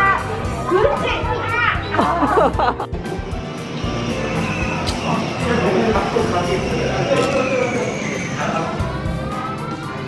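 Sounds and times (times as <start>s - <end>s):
background music: 0.0s - 10.0s
children calling out: 6.8s - 10.0s.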